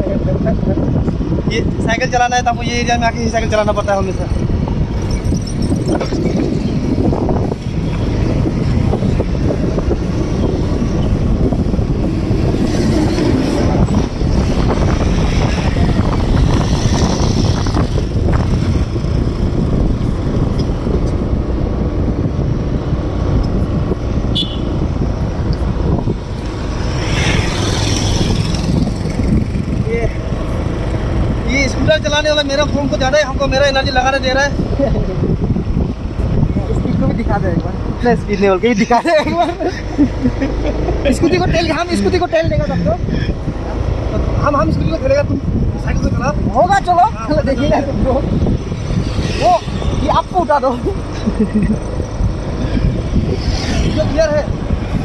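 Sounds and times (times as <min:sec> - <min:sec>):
road and vehicle noise: 0:00.0 - 0:55.0
wind buffeting microphone: 0:00.0 - 0:55.0.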